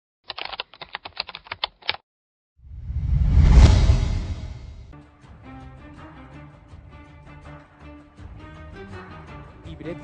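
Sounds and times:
keystroke clicks: 0.3s - 2.0s.

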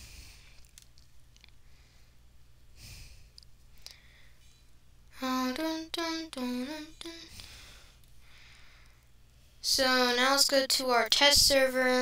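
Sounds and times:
soft breath at microphone: 0.0s - 0.6s, 2.8s - 4.6s, 7.2s - 9.6s
low electrical hum: 0.0s - 12.0s.

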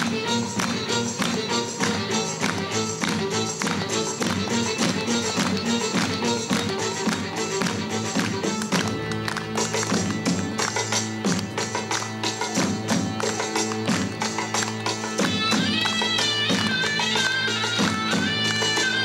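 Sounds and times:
live band instrumental: 0.0s - 19.0s.

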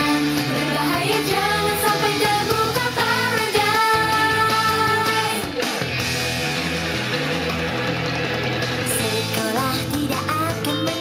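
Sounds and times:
people singing: 0.0s - 5.6s
upbeat pop song with band: 0.0s - 6.2s, 7.9s - 11.0s.

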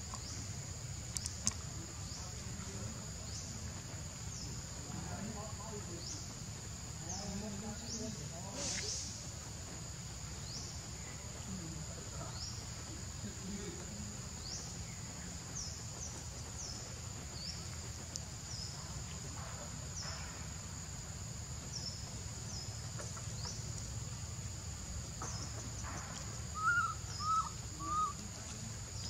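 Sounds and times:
high insect drone: 0.0s - 29.0s
bird chirps: 25.2s - 29.0s
animal rising and falling calls: 26.5s - 28.3s.

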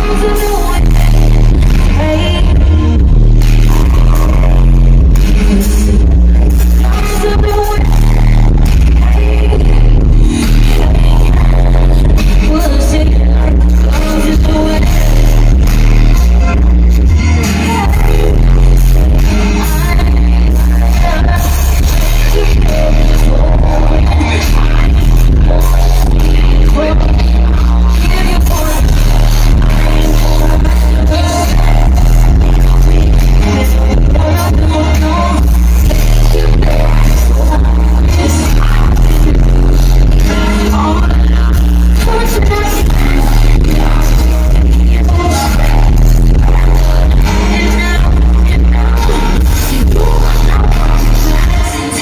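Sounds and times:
heavy bass line: 0.0s - 52.0s
woman singing: 0.0s - 52.0s.

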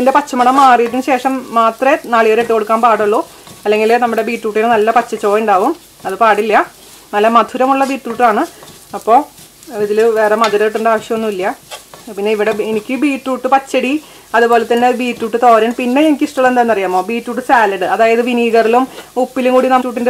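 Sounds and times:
food sizzling in a pan: 0.0s - 20.0s
spatula stirring in a pan: 0.0s - 20.0s
woman talking: 0.0s - 20.0s.

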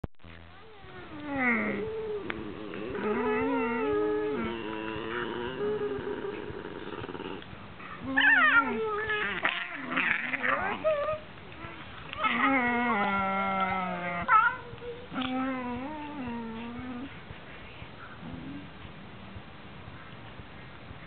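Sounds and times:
dogs growl-moaning: 0.6s - 17.2s.

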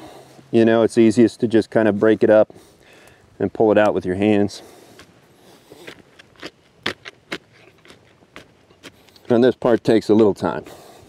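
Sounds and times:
stick digging into muddy soil: 4.8s - 10.6s.

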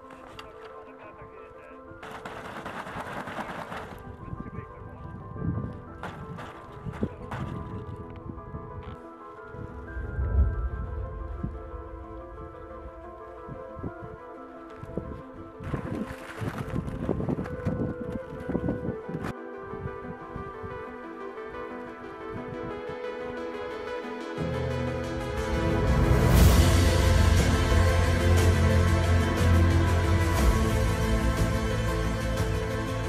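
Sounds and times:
background music with held tones: 0.0s - 2.9s, 3.9s - 33.0s
tent fabric rustling: 2.0s - 4.2s
wind on microphone: 2.4s - 20.9s.

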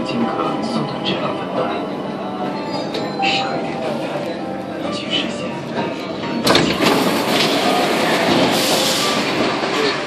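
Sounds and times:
steady train noise: 0.0s - 10.0s.

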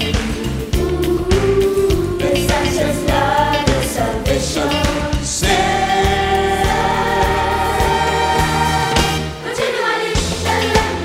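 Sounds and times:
gospel choir singing: 0.0s - 11.0s
instrumental music: 0.0s - 11.0s.

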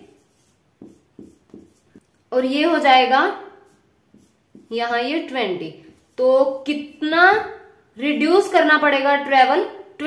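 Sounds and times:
marker pen writing on paper: 0.0s - 2.2s, 3.6s - 4.9s.

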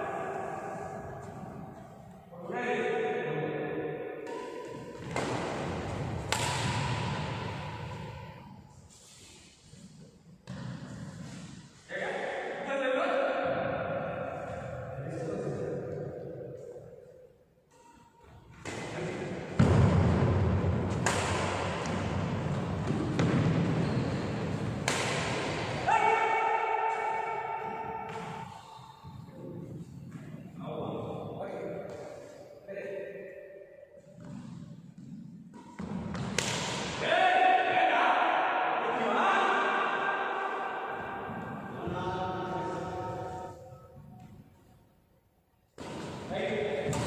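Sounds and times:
racket hitting shuttlecock: 4.2s - 11.7s, 17.7s - 28.6s, 34.1s - 37.0s, 45.7s - 47.0s.

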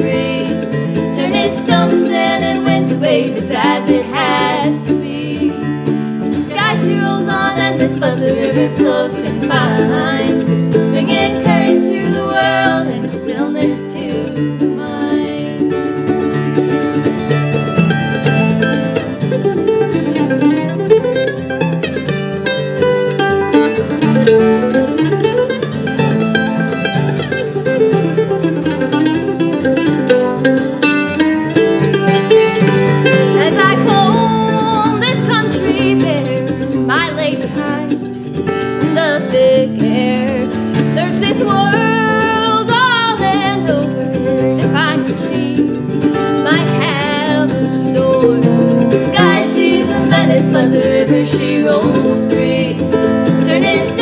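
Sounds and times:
acoustic guitar and mandolin playing: 0.0s - 54.0s.

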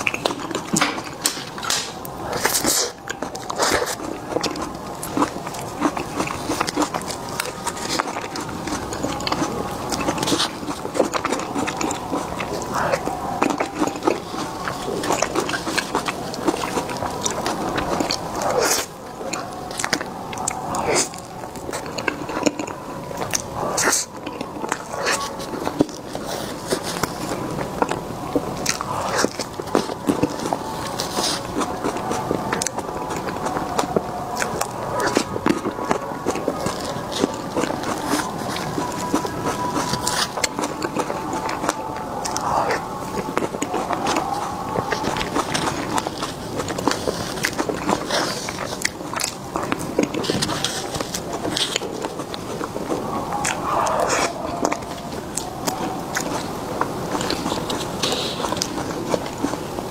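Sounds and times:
wet chewing and smacking: 0.0s - 59.9s.

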